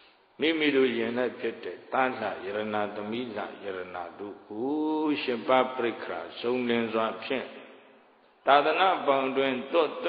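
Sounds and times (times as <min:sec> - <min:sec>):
man chanting a sermon: 0:00.4 - 0:07.8, 0:08.5 - 0:10.0.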